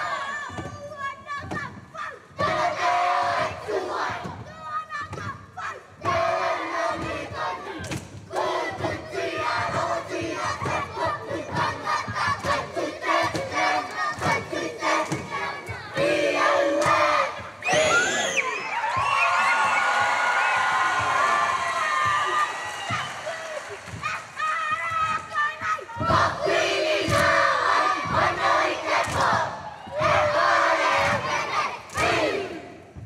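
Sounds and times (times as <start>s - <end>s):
children shouting rhythmic chant: 0.0s - 33.0s.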